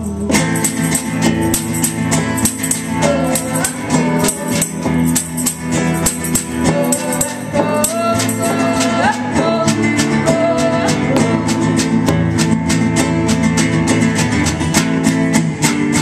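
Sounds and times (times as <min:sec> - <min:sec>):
acoustic band playing: 0:00.0 - 0:16.0
acoustic guitar strumming: 0:00.0 - 0:16.0
hand drum beat: 0:00.0 - 0:16.0
tambourine jingles: 0:00.0 - 0:16.0.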